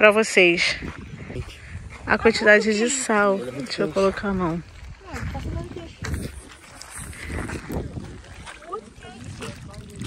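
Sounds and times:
wind buffeting microphone: 0.0s - 10.0s
small waves lapping: 0.7s - 10.0s.

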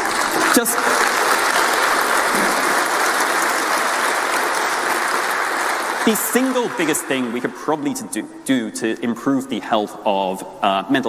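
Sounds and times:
audience applauding: 0.0s - 8.1s.

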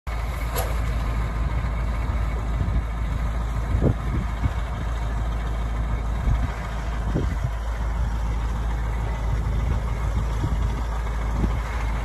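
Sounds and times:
diesel engine idling: 0.1s - 12.0s.

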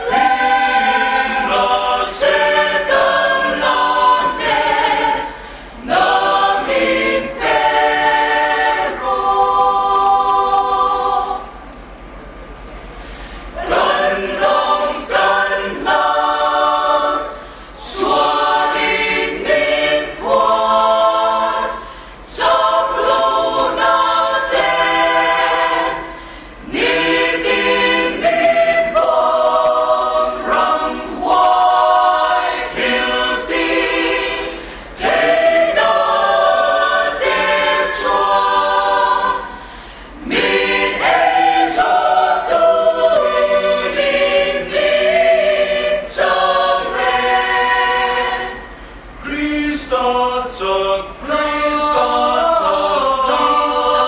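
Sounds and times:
mixed choir singing: 0.0s - 11.6s, 13.6s - 54.0s.

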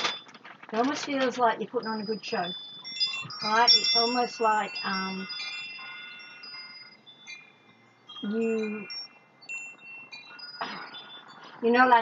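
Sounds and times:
chimes ringing softly: 1.3s - 12.0s.

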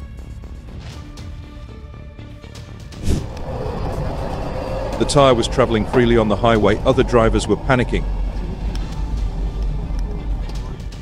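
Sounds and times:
sudden rush of noise: 3.0s - 10.6s
car driving on highway: 3.1s - 11.0s.

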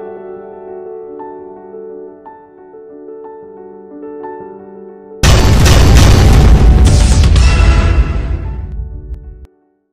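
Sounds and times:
cinematic boom: 5.2s - 9.4s.

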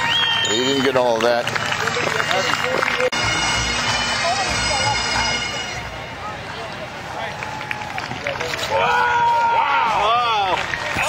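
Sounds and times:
bagpipes playing: 1.8s - 6.1s.

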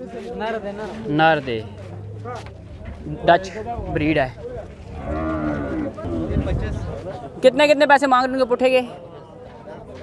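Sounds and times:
cow mooing: 5.0s - 6.4s.

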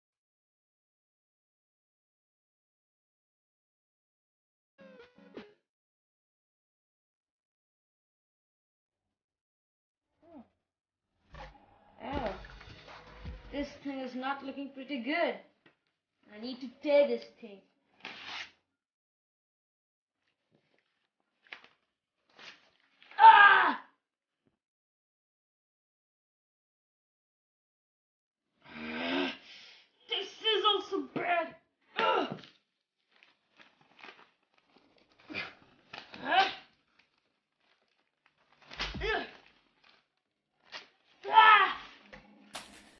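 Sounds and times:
paper tearing: 18.0s - 18.6s, 41.7s - 42.9s
boy groaning and crying: 41.3s - 41.8s.

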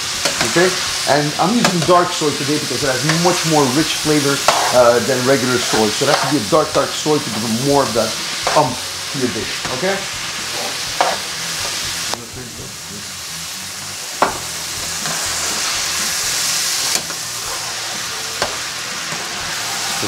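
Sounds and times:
meat sizzling in a frying pan: 0.0s - 20.0s.

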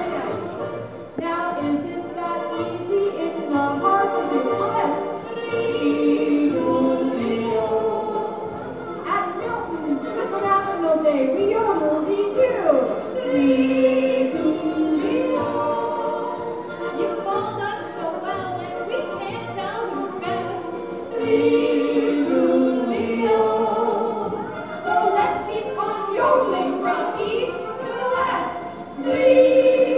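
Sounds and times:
accordion: 0.0s - 29.9s
women singing folk song: 0.0s - 29.9s
women yodeling in harmony: 1.4s - 8.8s, 11.4s - 29.9s.

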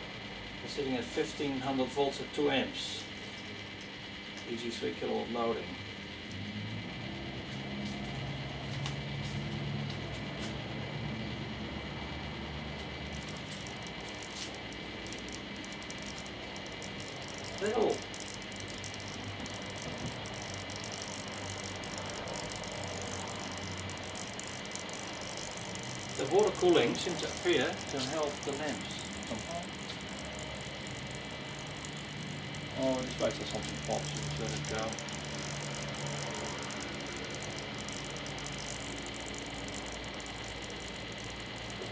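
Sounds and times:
transformers humming: 0.0s - 41.9s
crackling clicks: 3.1s - 4.6s, 6.0s - 41.9s.

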